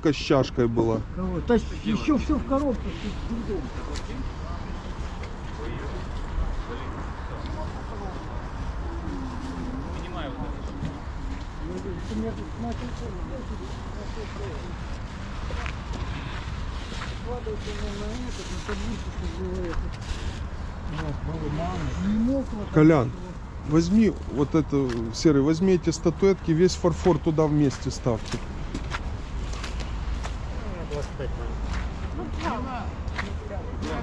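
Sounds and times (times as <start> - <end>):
faint voices talking: 0.0 - 28.7.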